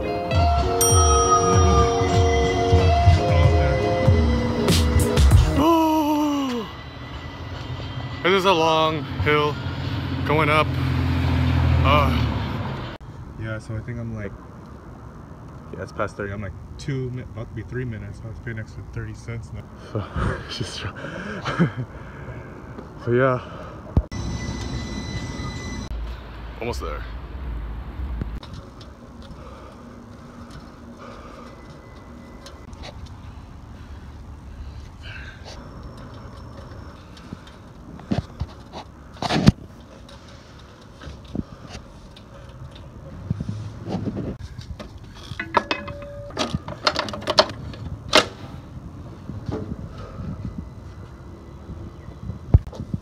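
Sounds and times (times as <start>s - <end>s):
street background noise: 0.0s - 53.0s
bicycle clicks and knocks: 44.4s - 48.4s
bicycle rattling knocks: 44.7s - 48.3s.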